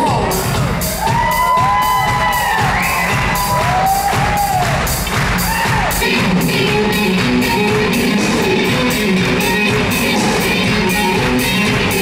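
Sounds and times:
drum beat: 0.0s - 12.0s
live rock band playing: 0.0s - 12.0s
crowd cheering: 0.6s - 6.3s.

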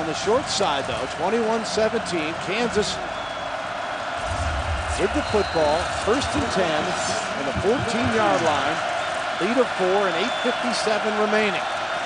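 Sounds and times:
murmur of large crowd: 0.0s - 12.0s
low rumble: 4.2s - 7.2s.

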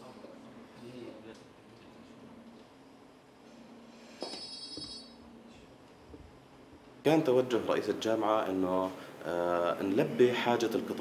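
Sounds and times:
high-pitched electronic beep: 4.3s - 5.2s.

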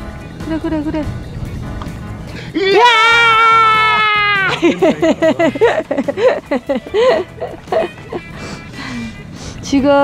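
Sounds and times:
man shouting in triumph: 2.6s - 4.6s
man laughing: 3.7s - 8.4s.

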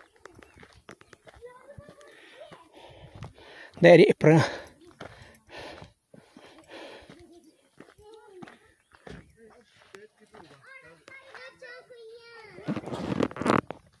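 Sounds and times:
child's voice: 0.0s - 3.0s, 4.8s - 5.2s, 6.6s - 8.8s, 10.5s - 13.0s.

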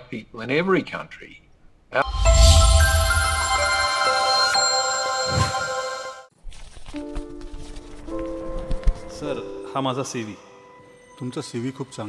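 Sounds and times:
bright electronic chime chord: 2.0s - 6.3s.

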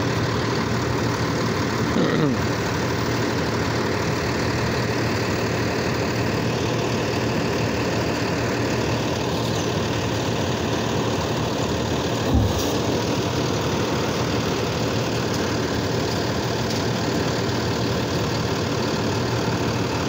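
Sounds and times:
garbage truck engine idling: 0.0s - 20.0s
short low thump: 12.2s - 13.0s.

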